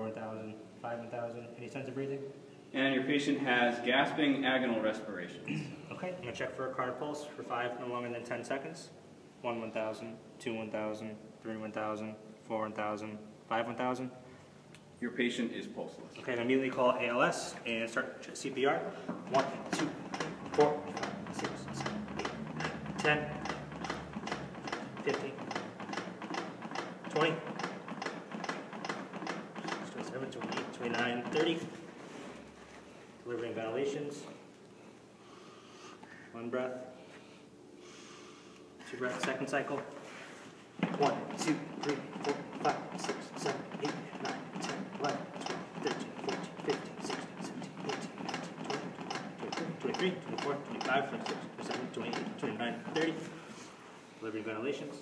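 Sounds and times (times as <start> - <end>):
man counting aloud: 9.4 - 14.2, 16.2 - 23.8, 24.7 - 25.6, 27.0 - 27.7, 29.7 - 31.8, 40.8 - 53.4
cpr manikin clicking: 19.2 - 31.6, 40.8 - 53.2.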